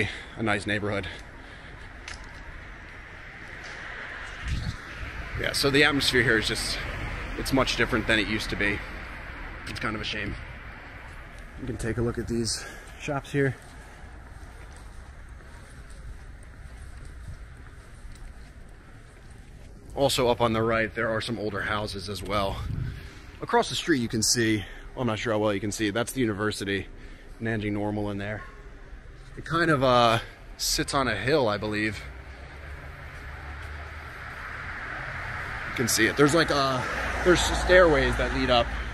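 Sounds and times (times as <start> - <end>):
distant traffic: 0.0 - 38.9
wind on microphone: 4.3 - 5.6, 22.5 - 23.2.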